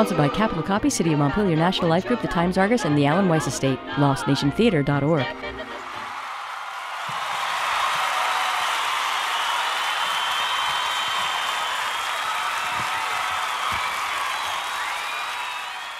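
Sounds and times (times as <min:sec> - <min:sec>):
audience clapping and cheering: 0:05.7 - 0:15.9.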